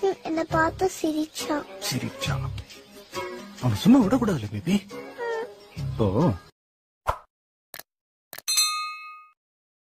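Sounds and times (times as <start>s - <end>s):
bell-like ding: 8.5s - 9.4s.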